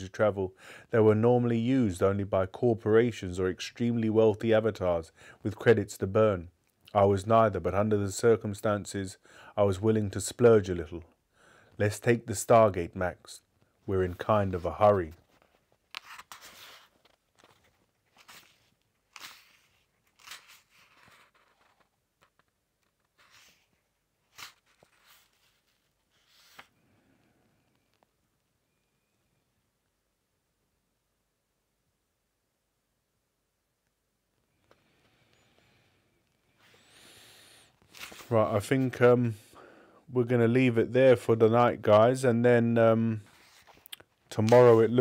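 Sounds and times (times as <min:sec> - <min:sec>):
soft faint hiss: 0:00.0 - 0:45.0
pages rustling: 0:14.0 - 0:26.8, 0:37.8 - 0:38.9, 0:43.2 - 0:45.0.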